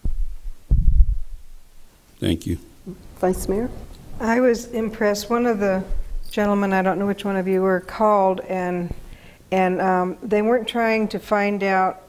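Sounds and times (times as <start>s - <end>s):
dull low thumps: 0.0s - 1.7s.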